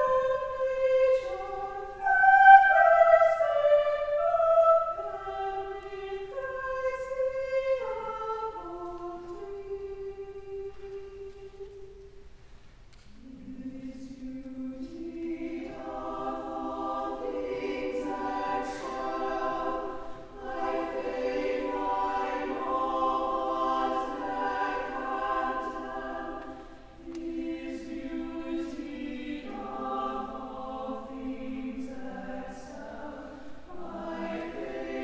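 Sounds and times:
choir singing long chords: 0.0s - 12.2s, 13.1s - 35.0s.

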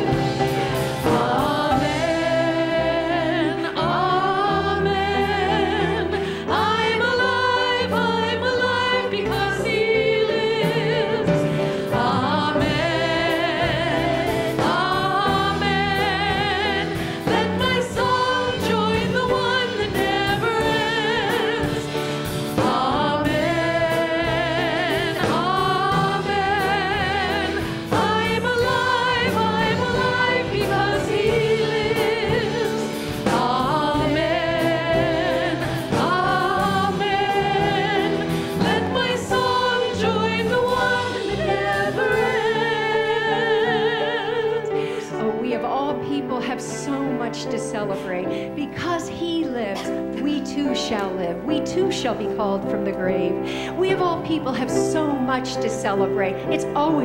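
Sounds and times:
drums: 0.0s - 46.9s
keyboard: 0.0s - 57.0s
women singing with vibrato: 0.0s - 57.0s.

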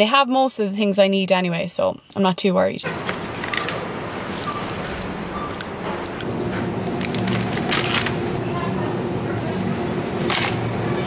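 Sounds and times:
shop floor background noise: 2.8s - 11.0s
packaging clicks and rustles: 2.9s - 3.8s, 4.4s - 8.4s.

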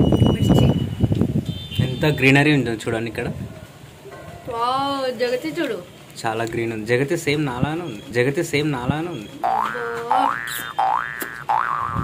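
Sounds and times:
cartoon boing sound effect: 9.4s - 12.0s.

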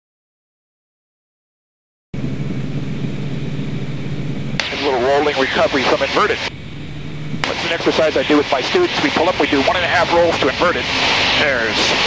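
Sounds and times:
propeller plane engine drone: 2.2s - 12.0s
hiss: 10.0s - 12.0s.

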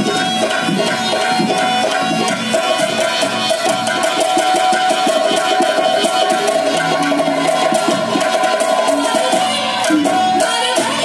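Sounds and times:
hand drums and percussion beat: 0.0s - 11.0s.

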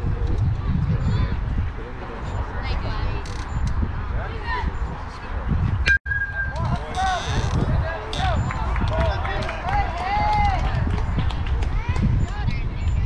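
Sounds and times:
spectators shouting and cheering: 6.1s - 12.0s.

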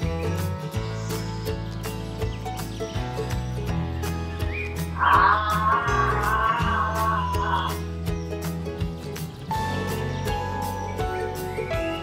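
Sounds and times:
background music with beat and bass: 0.0s - 12.0s
wavering melody line: 5.0s - 7.8s.

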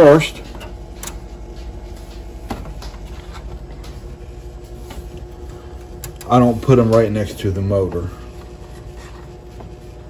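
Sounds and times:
incubator hum: 0.0s - 10.0s.

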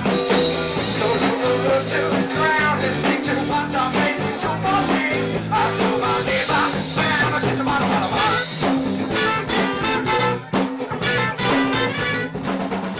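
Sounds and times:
live funk-rock band playing: 0.0s - 12.9s.

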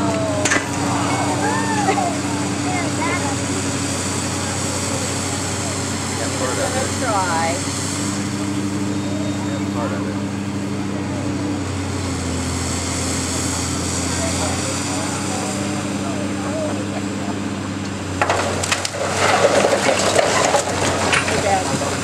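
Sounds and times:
excavator diesel engine running: 0.0s - 22.0s.

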